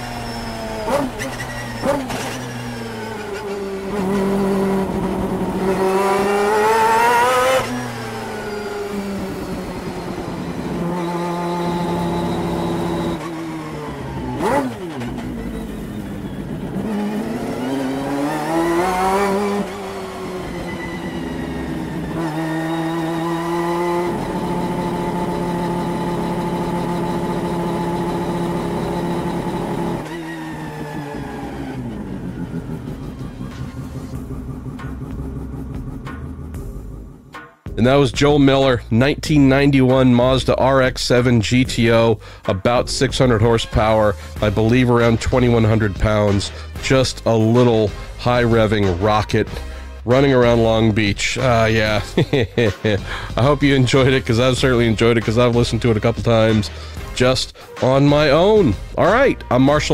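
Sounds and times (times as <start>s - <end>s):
racing engine revving: 0.0s - 37.4s, 43.1s - 59.9s.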